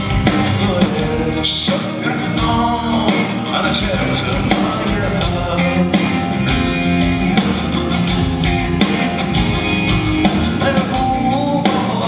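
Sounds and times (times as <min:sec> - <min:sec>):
drum kit beat: 0:00.0 - 0:12.0
guitars: 0:00.0 - 0:12.0
live rock band: 0:00.0 - 0:12.0.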